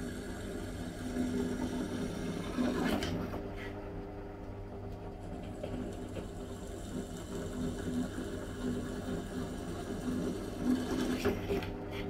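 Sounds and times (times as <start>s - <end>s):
drill press motor hum: 0.0s - 4.1s, 5.1s - 12.0s.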